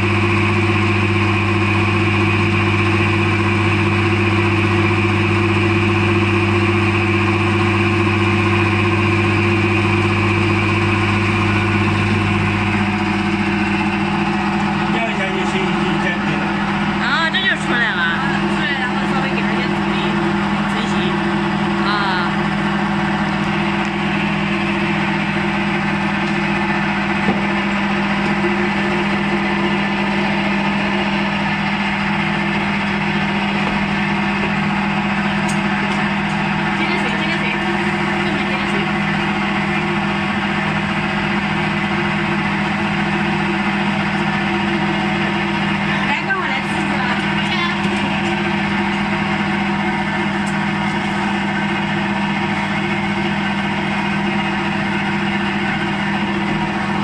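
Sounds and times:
electric motor humming: 0:00.0 - 0:57.0.

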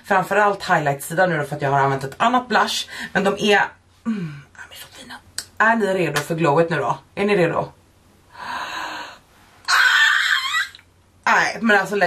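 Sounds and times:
woman breathing in: 0:08.3 - 0:09.5.

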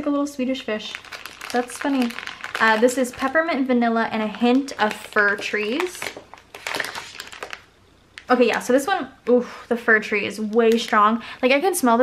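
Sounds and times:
plastic bag crinkling: 0:00.7 - 0:08.8.

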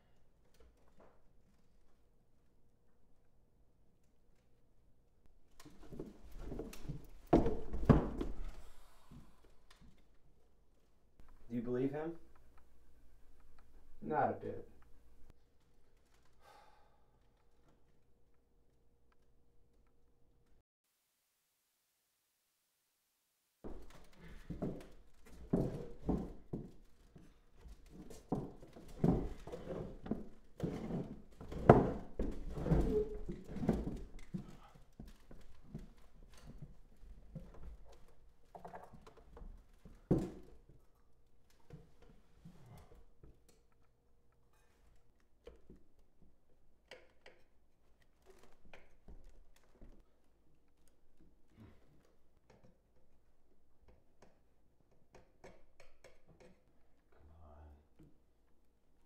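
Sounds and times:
wooden chair knocking and creaking: 0:05.6 - 0:08.5, 0:23.7 - 0:40.6.

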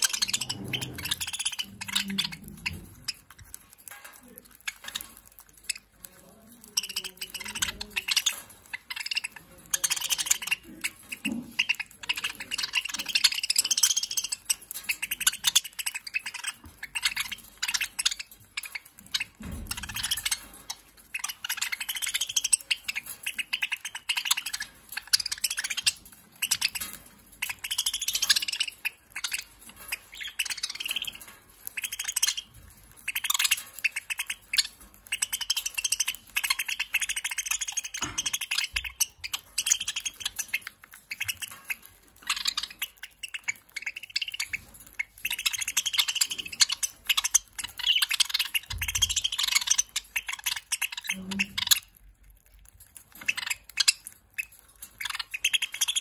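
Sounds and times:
budgerigars chirping and warbling: 0:00.0 - 0:56.0.

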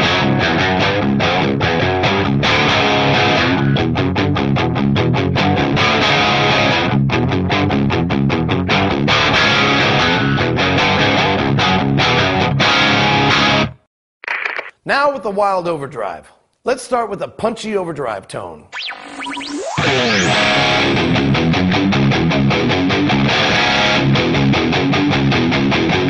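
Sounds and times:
distorted electric guitar riffs: 0:00.0 - 0:13.8, 0:18.7 - 0:26.0.

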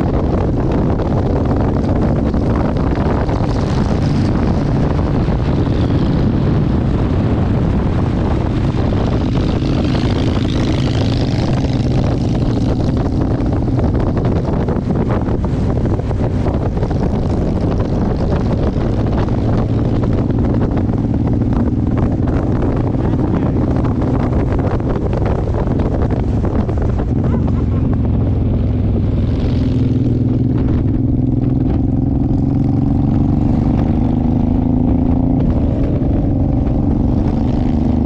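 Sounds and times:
motorcycle engine running: 0:00.0 - 0:38.0
wind rushing over microphone: 0:00.0 - 0:38.0.

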